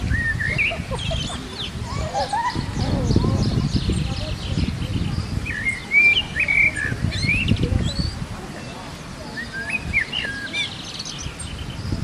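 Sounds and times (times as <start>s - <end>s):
birds chirping: 0.0s - 12.0s
gusty wind rumble: 0.0s - 12.0s.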